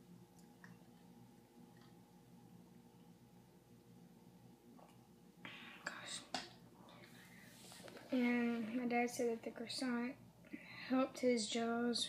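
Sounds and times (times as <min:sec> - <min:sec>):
faint whisper: 0:05.4 - 0:08.9.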